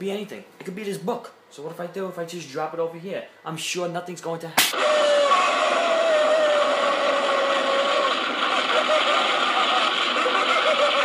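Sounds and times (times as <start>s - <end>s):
explosion roar: 4.6s - 11.0s.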